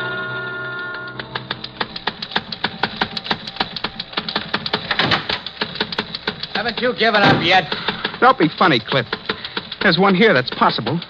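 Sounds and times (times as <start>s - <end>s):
teletype machine clattering: 1.2s - 11.0s.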